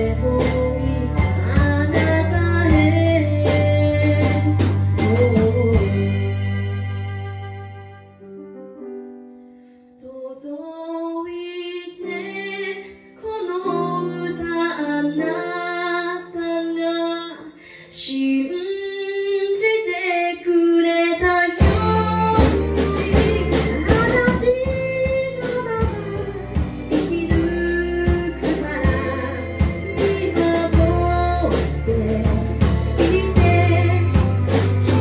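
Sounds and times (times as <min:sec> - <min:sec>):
woman singing pop ballad: 0:00.0 - 0:07.3, 0:10.0 - 0:35.0
drums and band: 0:00.0 - 0:08.0, 0:21.1 - 0:35.0
bowed cello: 0:00.0 - 0:08.4, 0:21.6 - 0:35.0.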